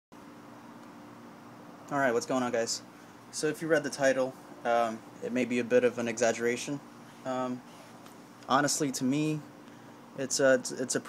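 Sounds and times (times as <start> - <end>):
room noise hum with hiss: 0.2 - 11.0
man speaking: 1.9 - 7.6, 8.4 - 9.5, 10.2 - 11.0.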